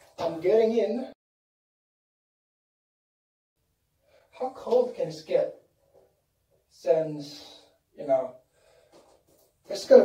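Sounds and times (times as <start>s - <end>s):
person speaking: 0.0s - 1.2s, 4.3s - 5.7s, 9.6s - 10.0s.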